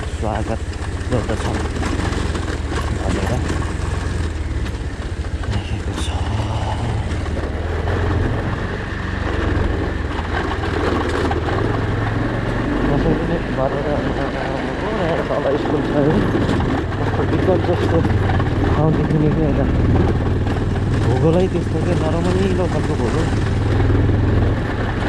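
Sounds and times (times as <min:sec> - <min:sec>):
motorcycle engine at low revs: 0:00.0 - 0:25.0
rattling and clatter: 0:00.0 - 0:25.0.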